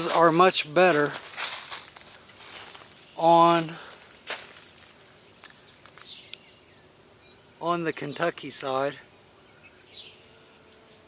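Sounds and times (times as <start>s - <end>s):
footsteps on leaves: 0.0s - 6.2s
high-pitched insect drone: 0.0s - 11.0s.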